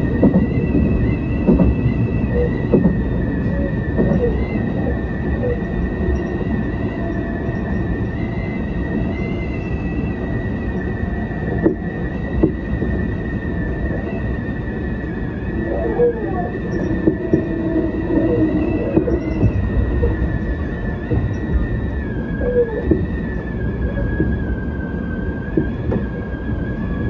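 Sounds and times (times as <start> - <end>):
wheels clicking over rail joints: 0.0 - 9.7, 10.6 - 27.0
high electric whine: 0.0 - 27.0
train wheels rumbling on rail: 0.0 - 27.0.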